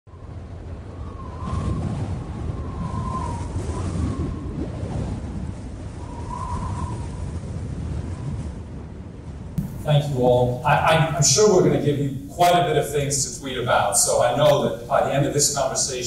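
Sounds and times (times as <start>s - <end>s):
low noisy rumble: 8.9s - 16.0s.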